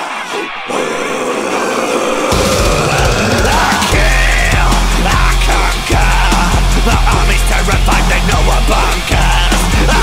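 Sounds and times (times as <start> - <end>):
harsh monster roar: 0.0 - 10.0.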